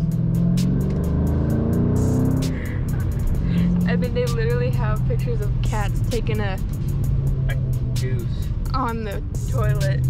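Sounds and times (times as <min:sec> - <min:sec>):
background music: 0:00.0 - 0:10.0
car engine and road drone: 0:00.0 - 0:10.0.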